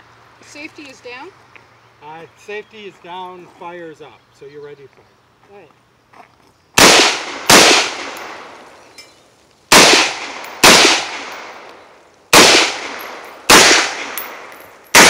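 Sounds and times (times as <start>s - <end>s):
rifle shots echoing: 6.8s - 8.7s, 9.7s - 11.7s, 12.3s - 15.0s.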